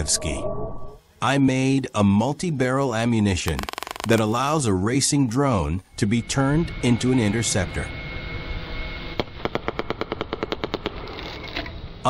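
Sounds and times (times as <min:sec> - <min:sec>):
rapid string of pops: 0:03.6 - 0:04.3.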